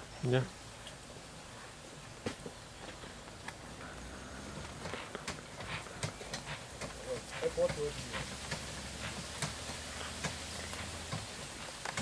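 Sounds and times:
leaves rustling: 0.0s - 12.0s
sharp clicks and snaps of stems: 8.4s - 12.0s.

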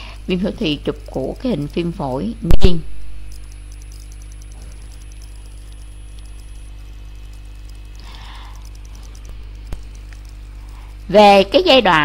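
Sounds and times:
faint high ticking: 0.0s - 12.0s
low electrical hum: 0.0s - 12.0s.

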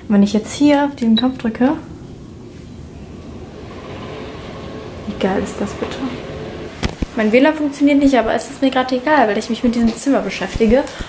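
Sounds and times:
curtain track motor hum: 0.0s - 11.0s.

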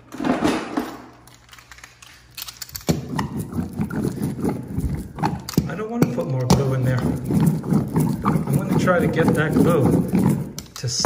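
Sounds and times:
seam roller rattling clatter: 6.4s - 10.6s.

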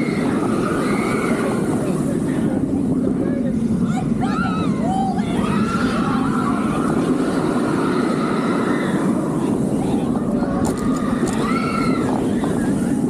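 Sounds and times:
roller coaster wheels rumbling: 0.0s - 13.0s
rushing wind: 0.0s - 13.0s.

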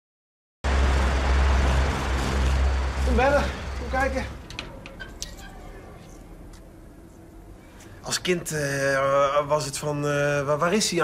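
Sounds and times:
drone rotor whir: 0.7s - 4.4s.

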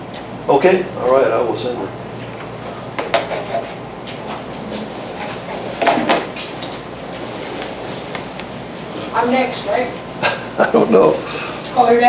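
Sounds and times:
rushing classroom background noise: 0.0s - 12.0s.

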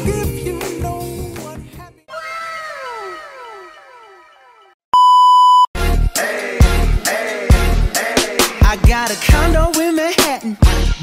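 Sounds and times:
background music: 0.0s - 2.0s, 5.8s - 11.0s
echoing falling tone effect: 2.2s - 4.8s.

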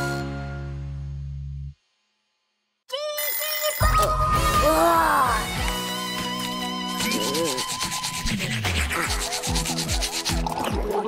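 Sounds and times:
toothbrush scrubbing teeth: 7.0s - 11.0s.

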